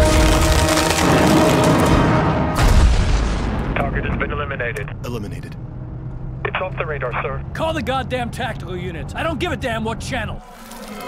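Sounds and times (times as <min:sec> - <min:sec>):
deep explosion booms: 0:00.0 - 0:04.1
film music score: 0:00.0 - 0:11.0.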